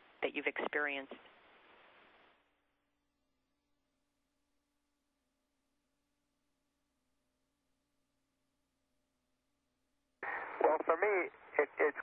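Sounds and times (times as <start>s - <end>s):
radio noise rush: 10.2s - 12.0s
person speaking over radio: 10.3s - 12.0s.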